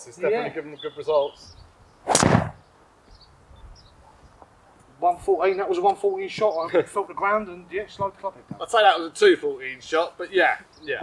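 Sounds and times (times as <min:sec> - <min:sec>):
golf driver hitting ball: 0:02.1 - 0:02.6.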